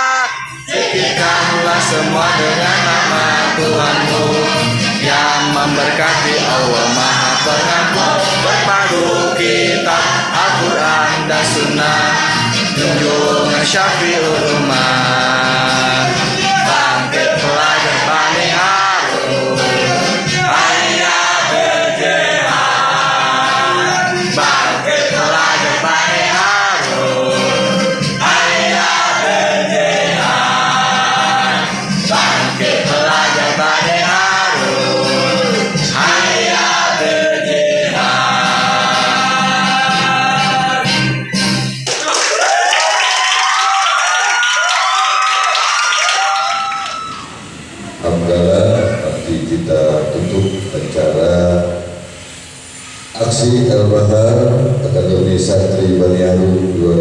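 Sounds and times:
group singing in unison: 0.0s - 41.3s
crowd applauding and cheering: 41.7s - 47.6s.

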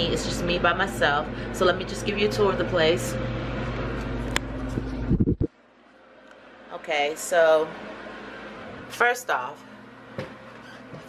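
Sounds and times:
fan humming: 0.0s - 11.0s.

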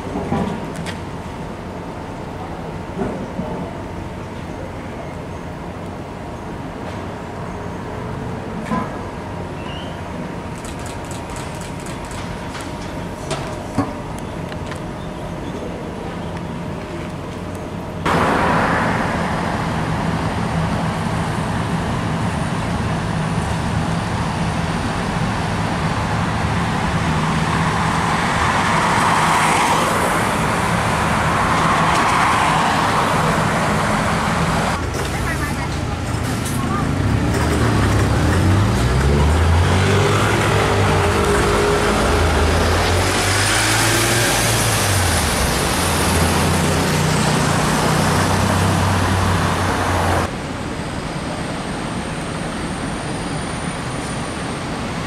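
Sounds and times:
road traffic: 0.0s - 55.0s
bus diesel engine pulling away: 29.9s - 50.6s.

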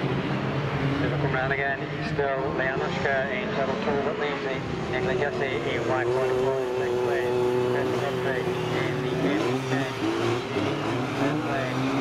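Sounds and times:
race car engines running: 0.0s - 12.0s.

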